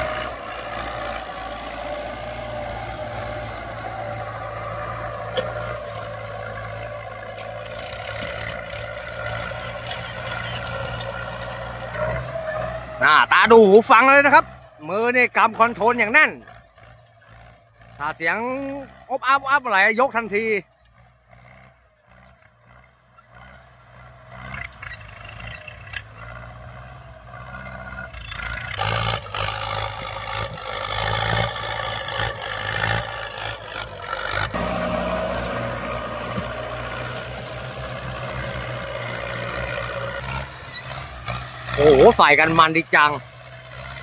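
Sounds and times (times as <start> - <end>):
tractor engine working under load: 0.0 - 44.0.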